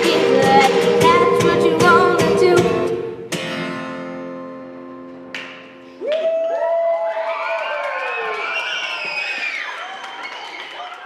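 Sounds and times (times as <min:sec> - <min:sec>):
children cheering and screaming: 0:06.1 - 0:11.0.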